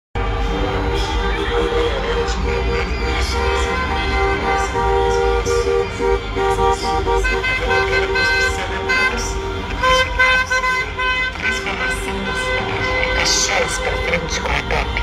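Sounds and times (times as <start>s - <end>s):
car horns honking: 0.2s - 15.0s
low engine rumble: 0.2s - 15.0s
music playing: 0.2s - 15.0s.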